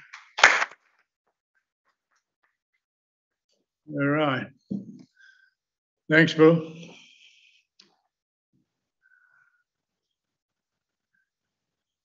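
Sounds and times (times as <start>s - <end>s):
man's voice: 3.9s - 4.5s, 6.1s - 6.9s.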